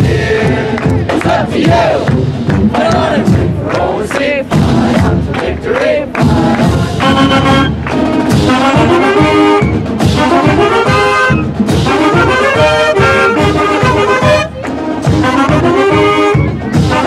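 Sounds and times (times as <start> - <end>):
crowd shouting a chant: 0.0 - 2.1, 2.7 - 6.9
brass held chord: 10.2 - 17.0.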